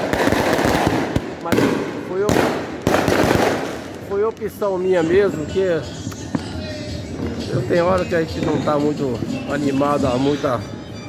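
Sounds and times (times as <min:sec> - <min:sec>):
loud firework bangs: 0:00.0 - 0:04.2
fireworks crackling: 0:00.0 - 0:10.6.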